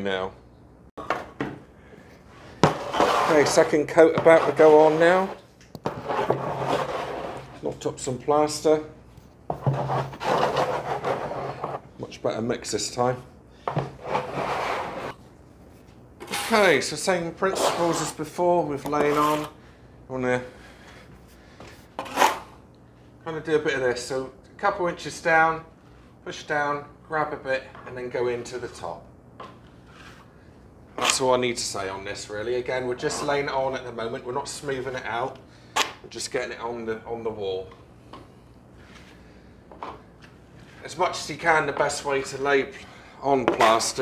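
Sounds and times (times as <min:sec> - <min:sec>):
plaster scraped from plastic bucket: 0:02.6 - 0:07.6, 0:09.5 - 0:11.8, 0:13.8 - 0:15.2, 0:17.5 - 0:18.2.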